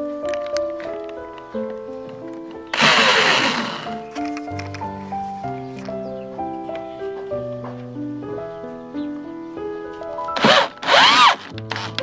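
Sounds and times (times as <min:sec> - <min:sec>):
background music: 0:00.0 - 0:12.0
electric drill driving a screw: 0:02.7 - 0:03.9, 0:10.4 - 0:12.0.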